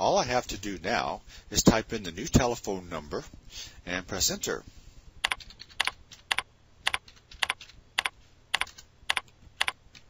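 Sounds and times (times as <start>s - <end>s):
keyboard keys clicking: 5.2s - 10.0s.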